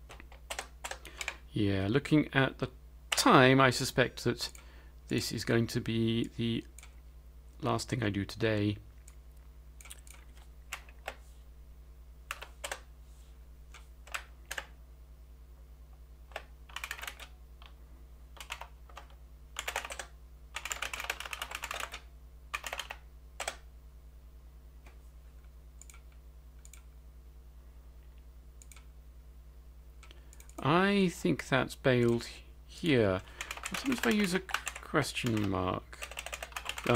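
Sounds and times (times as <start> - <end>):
faint steady low hum: 0.0 - 36.9
computer keyboard typing: 0.1 - 1.4, 12.3 - 12.9, 13.8 - 14.7, 16.3 - 17.3, 18.4 - 23.6, 33.4 - 36.9.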